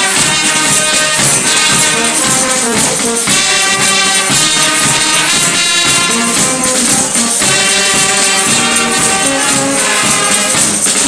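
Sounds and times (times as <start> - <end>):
bass drum: 0.0 - 11.0
brass band playing: 0.0 - 11.0
snare drum: 0.0 - 11.0.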